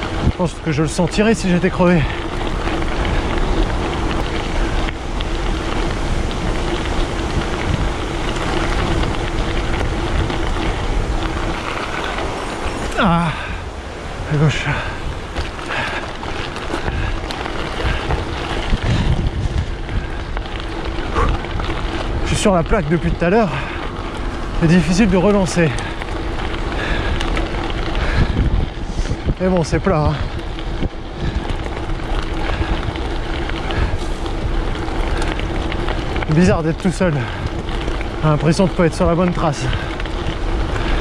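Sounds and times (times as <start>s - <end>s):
tyres crunching over gravel: 0.0s - 41.0s
wind buffeting microphone: 0.0s - 41.0s.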